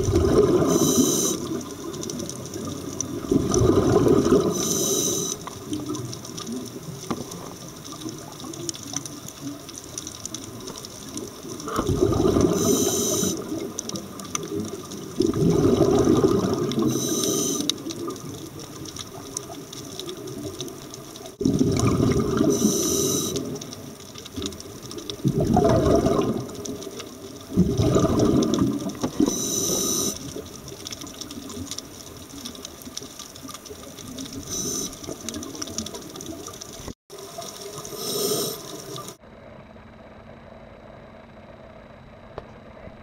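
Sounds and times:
exhaled bubbles underwater: 0:00.0 - 0:39.2
quiet steady hum: 0:00.0 - 0:43.0
hissing regulator inhalations: 0:00.6 - 0:01.6, 0:04.4 - 0:05.6, 0:12.5 - 0:13.5, 0:16.8 - 0:17.8, 0:22.5 - 0:23.6, 0:29.2 - 0:30.3, 0:34.4 - 0:35.0, 0:37.8 - 0:39.1.

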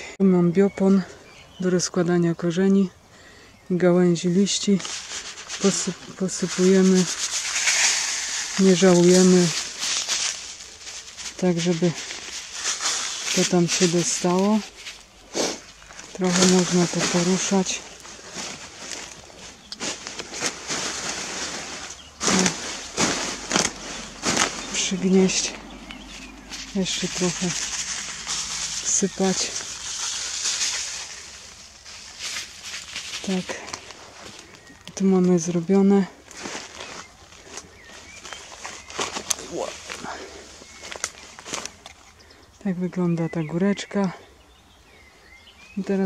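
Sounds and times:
plant stems rustling and crackling: 0:03.8 - 0:44.1.

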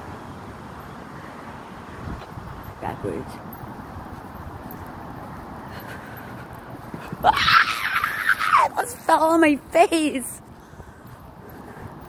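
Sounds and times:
street rumble: 0:00.0 - 0:12.0.

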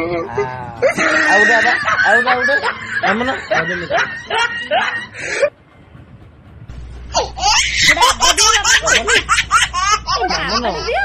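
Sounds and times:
baby laughing: 0:07.1 - 0:11.0.

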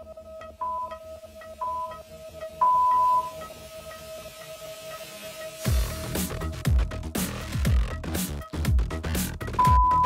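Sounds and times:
timer beeps: 0:00.0 - 0:05.7, 0:09.6 - 0:10.0
electronic background music: 0:00.0 - 0:10.0.

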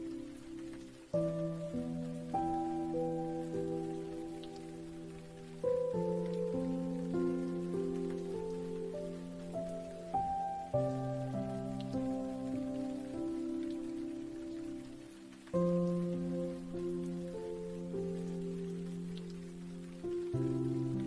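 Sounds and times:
slow gentle piano music: 0:00.0 - 0:21.0
steady rain: 0:00.0 - 0:21.0.

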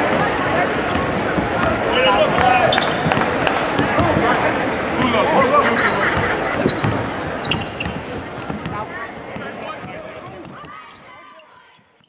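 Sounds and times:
crowd chatter: 0:00.0 - 0:12.0
ball bouncing on court: 0:00.1 - 0:05.3, 0:06.0 - 0:11.1.

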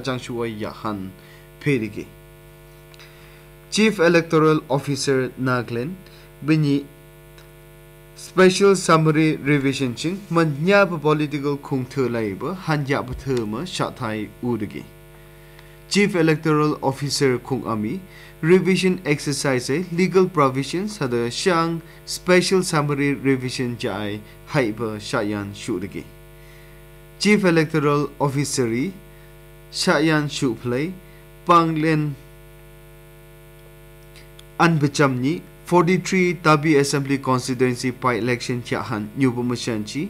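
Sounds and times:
newsreader speaking: 0:00.0 - 0:02.1, 0:03.7 - 0:06.9, 0:08.2 - 0:14.9, 0:15.9 - 0:26.1, 0:27.2 - 0:29.0, 0:29.7 - 0:32.2, 0:34.6 - 0:40.0
electrical mains hum: 0:00.0 - 0:40.0.

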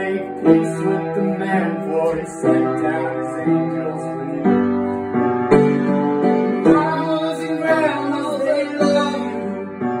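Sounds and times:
upright piano chords: 0:00.0 - 0:10.0.

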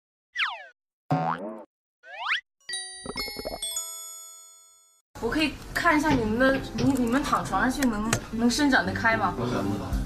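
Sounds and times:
springy boing: 0:00.4 - 0:02.4.

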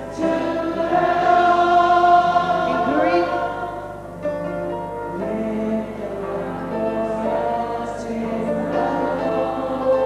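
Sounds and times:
gospel singing by several voices: 0:00.0 - 0:10.0.

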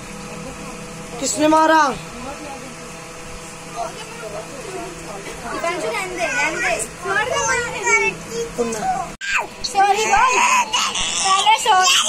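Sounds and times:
young child crying: 0:09.2 - 0:12.0.

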